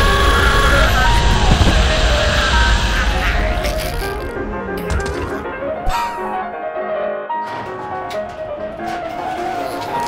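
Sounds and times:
vacuum machine rushing noise: 0.0 - 4.8
cartoon music: 0.0 - 6.5.

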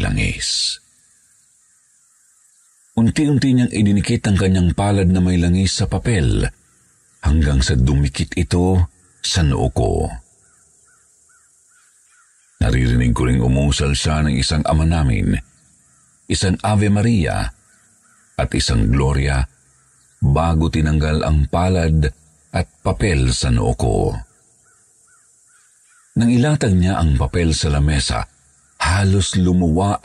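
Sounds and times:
narration: 0.0 - 0.8, 3.0 - 10.3, 12.6 - 15.7, 16.3 - 17.7, 18.4 - 24.3, 26.2 - 30.0
voice: 0.0 - 0.8, 3.0 - 6.6, 7.2 - 10.2, 12.6 - 15.4, 16.3 - 17.6, 18.4 - 19.5, 20.2 - 24.2, 26.2 - 30.0
crows cawing: 1.0 - 3.0, 6.5 - 7.2, 10.2 - 12.6, 15.5 - 16.3, 17.5 - 18.4, 19.5 - 20.2, 24.2 - 26.2.

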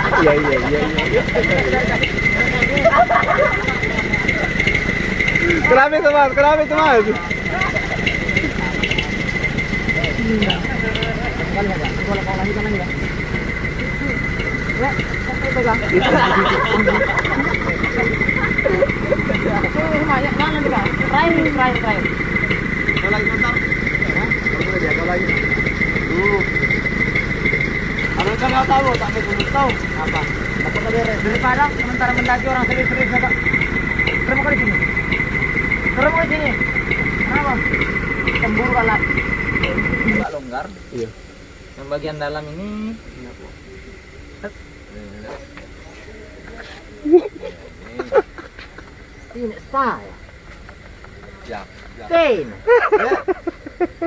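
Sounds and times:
diesel truck engine idling: 0.0 - 54.0
high-pitched whine: 0.0 - 54.0
men chatting: 0.0 - 54.0
voices talking: 0.0 - 54.0.

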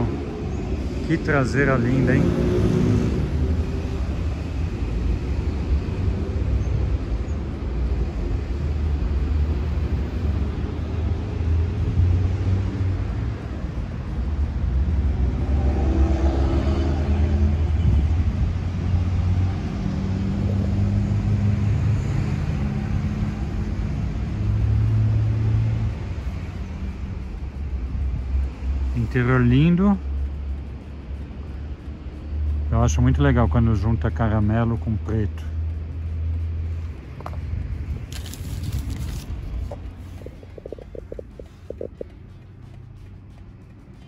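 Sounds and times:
low rumble of motor vehicles: 0.0 - 44.0
low hum: 20.3 - 44.0.

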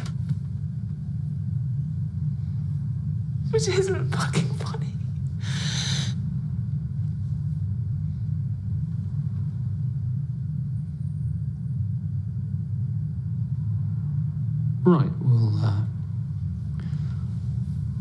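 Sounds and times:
steady low rumble: 0.0 - 18.0
woman breathing in tearfully: 5.4 - 6.2.

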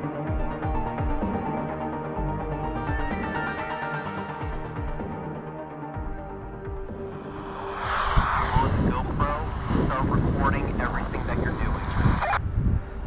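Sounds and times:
vehicle road and wind noise: 7.0 - 13.0.

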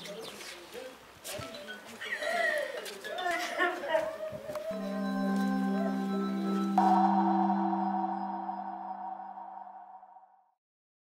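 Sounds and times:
bell-like chord ringing: 4.8 - 10.4.

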